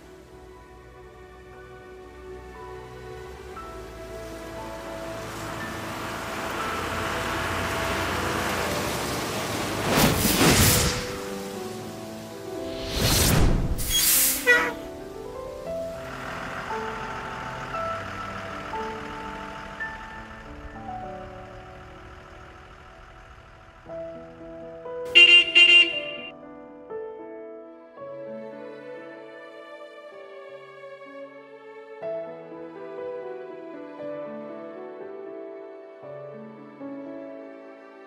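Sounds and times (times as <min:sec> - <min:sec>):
soft film score music: 0:00.0 - 0:10.1, 0:10.8 - 0:38.0
rushing rumbling sound effect: 0:04.5 - 0:24.8
whooshing surge: 0:09.7 - 0:11.6, 0:12.6 - 0:14.9
school bus horn honks: 0:14.3 - 0:15.0, 0:25.1 - 0:26.3.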